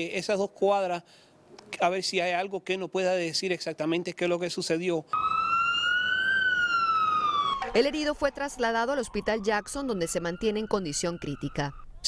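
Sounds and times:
fire truck siren wailing: 5.2s - 11.8s.

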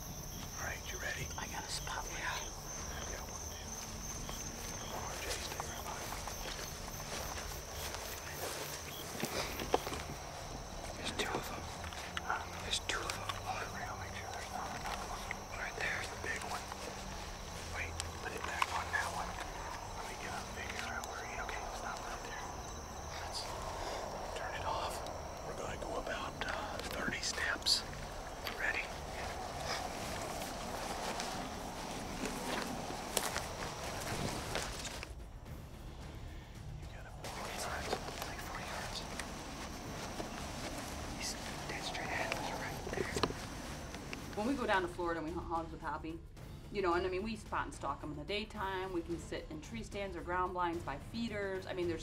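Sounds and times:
night insects chorus: 0.0s - 52.0s
people whispering: 0.2s - 35.1s, 36.5s - 46.1s.

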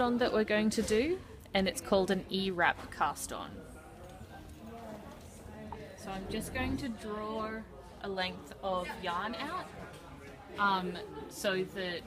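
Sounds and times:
faint indistinct voices: 0.0s - 12.0s.

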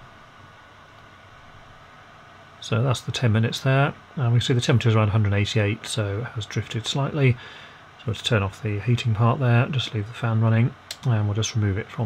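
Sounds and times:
fan blowing air hiss: 0.0s - 12.0s.

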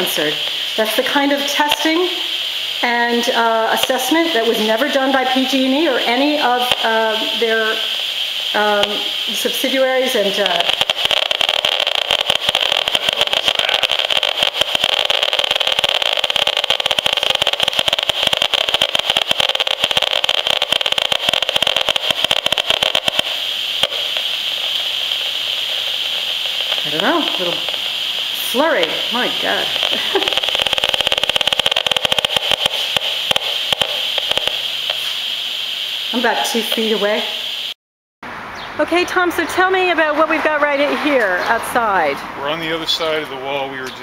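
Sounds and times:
steady hiss: 0.0s - 37.8s, 38.9s - 44.0s
rapid radio clicks: 3.8s - 7.9s, 8.6s - 35.2s.

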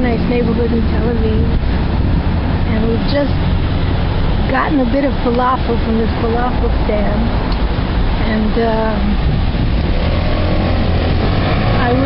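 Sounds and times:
traffic engines rumbling: 0.0s - 12.0s.

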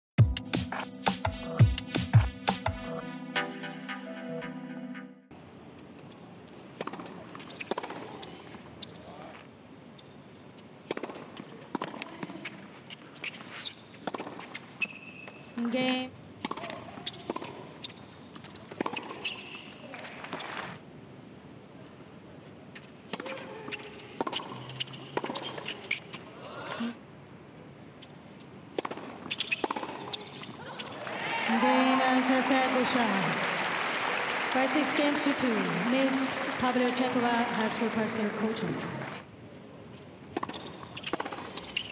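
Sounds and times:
tennis ball struck by racquets: 10.8s - 12.0s, 28.7s - 30.1s, 40.3s - 41.9s
crowd applause and cheering: 31.0s - 39.2s.

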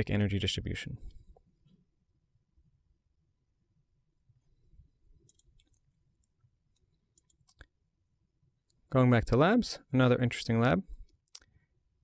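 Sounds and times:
computer mouse clicks: 5.2s - 7.7s.

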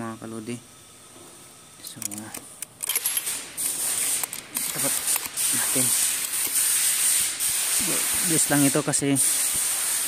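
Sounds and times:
loud steady hiss: 0.0s - 10.0s
scattered clicks: 2.0s - 5.5s.

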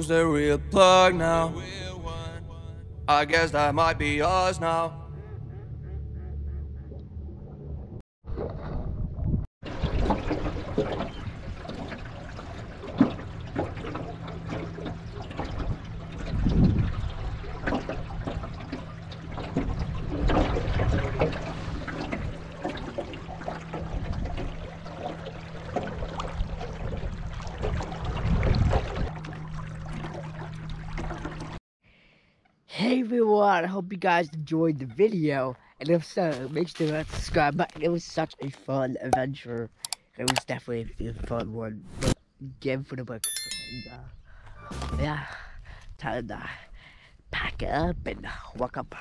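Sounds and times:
low motor hum: 0.0s - 8.0s, 9.0s - 31.6s
water lapping against boat hull: 9.6s - 31.6s.

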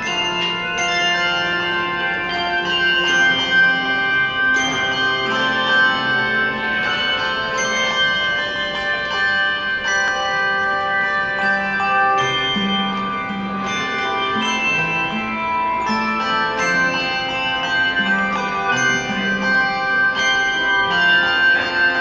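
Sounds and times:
handbell choir playing: 0.0s - 22.0s.

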